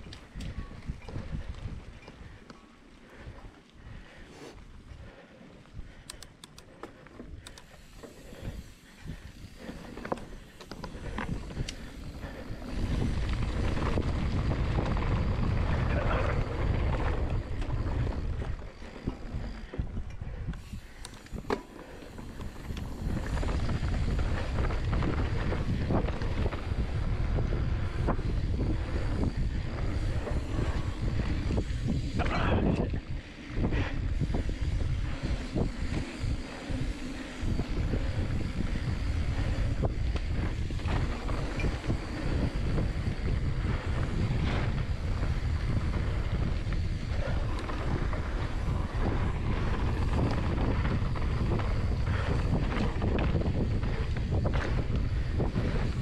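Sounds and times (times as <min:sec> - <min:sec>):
wind buffeting microphone: 0:00.0 - 0:02.5, 0:07.3 - 0:56.0
bike clicks and knocks: 0:06.0 - 0:15.6, 0:16.7 - 0:27.3
tyre noise on dirt: 0:20.6 - 0:56.0.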